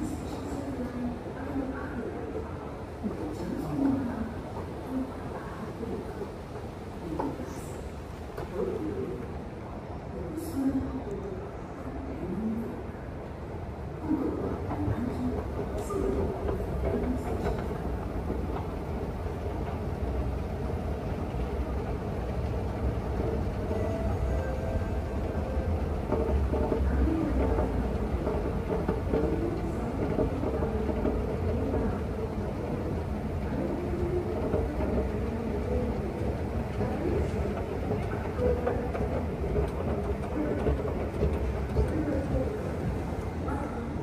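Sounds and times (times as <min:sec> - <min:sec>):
escalator and train rumble: 0:00.0 - 0:44.0.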